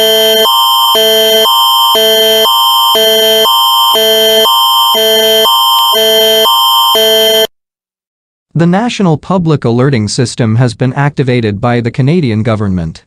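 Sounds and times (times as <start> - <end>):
electronic emergency alert tones: 0.0 - 7.5.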